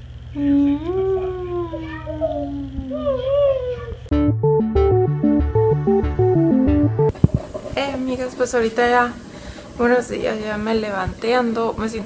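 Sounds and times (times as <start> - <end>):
steady low hum: 0.0 - 12.0
voices whining: 0.3 - 4.1.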